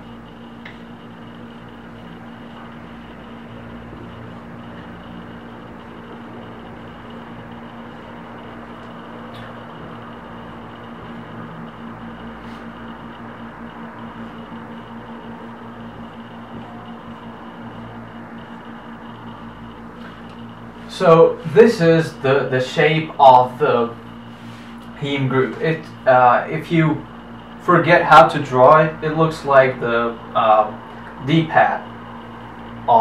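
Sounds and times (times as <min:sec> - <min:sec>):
electrical hum and hiss: 0:00.0 - 0:33.0.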